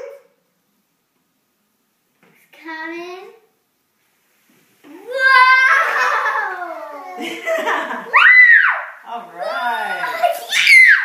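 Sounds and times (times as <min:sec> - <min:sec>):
child's excited ooh: 0:04.9 - 0:07.2, 0:08.1 - 0:09.0, 0:10.0 - 0:11.0.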